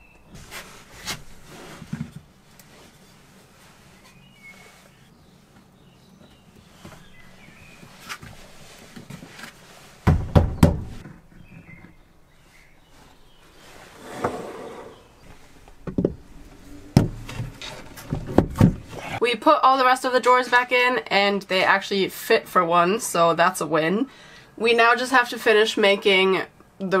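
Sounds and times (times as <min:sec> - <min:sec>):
wood and stone knocks and thumps: 0:10.0 - 0:11.6, 0:15.7 - 0:19.0.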